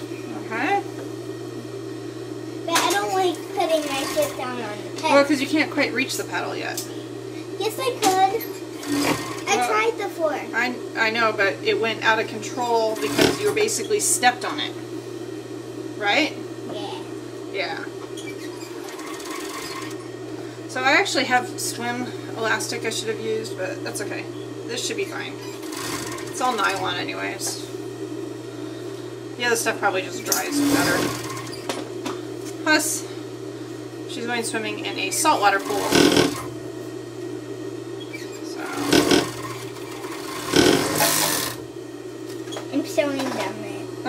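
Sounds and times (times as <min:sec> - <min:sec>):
low motor hum: 0:00.0 - 0:44.0
overlock machine stitching: 0:08.7 - 0:09.5, 0:12.9 - 0:13.6, 0:18.7 - 0:20.1, 0:25.5 - 0:26.8, 0:30.3 - 0:31.7, 0:35.4 - 0:36.6, 0:38.7 - 0:41.7.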